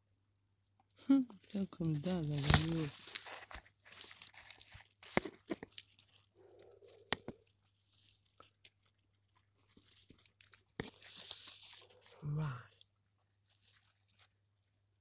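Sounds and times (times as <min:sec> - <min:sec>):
hand rustling through dry leaves: 0:01.8 - 0:04.9, 0:10.9 - 0:12.0.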